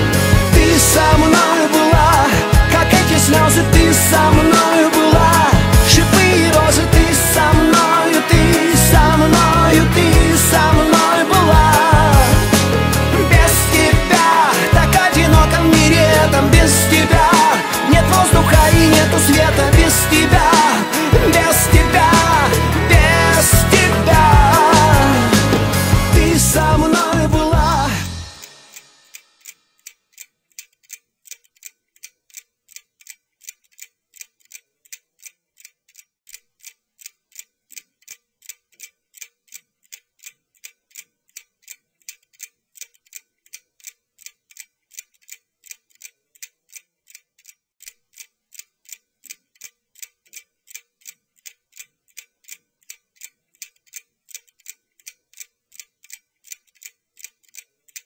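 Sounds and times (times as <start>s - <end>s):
loud song: 0.0s - 28.8s
clock ticking: 0.0s - 58.0s.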